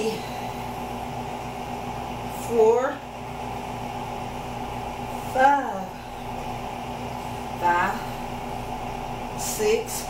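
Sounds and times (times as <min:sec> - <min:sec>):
machine humming: 0:00.0 - 0:10.0.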